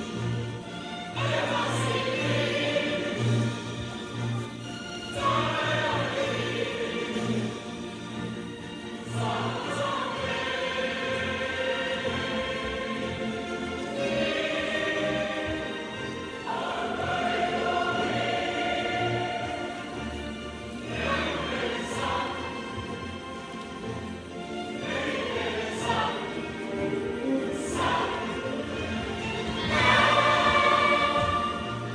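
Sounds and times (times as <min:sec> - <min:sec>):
girls singing together: 0:13.9 - 0:20.0, 0:24.8 - 0:26.8, 0:29.4 - 0:31.9.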